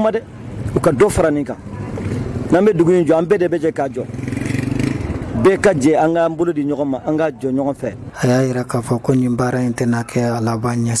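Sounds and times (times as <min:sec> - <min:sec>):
man speaking: 0:05.3 - 0:11.0.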